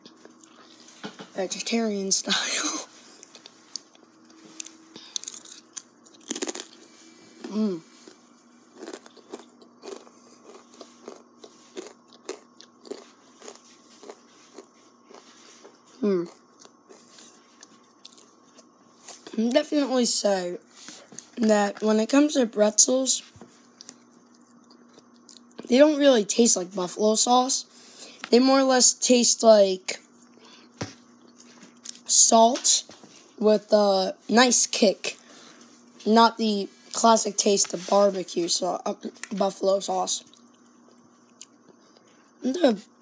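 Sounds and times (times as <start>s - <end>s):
faint steady hum: 0.0s - 43.0s
pretzels being chewed: 3.2s - 19.4s.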